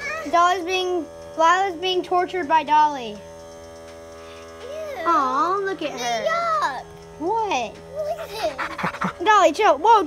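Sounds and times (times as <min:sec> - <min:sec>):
child's voice: 0:00.0 - 0:03.2, 0:04.6 - 0:06.8, 0:07.9 - 0:10.0
renovation buzzing hum: 0:00.0 - 0:10.0.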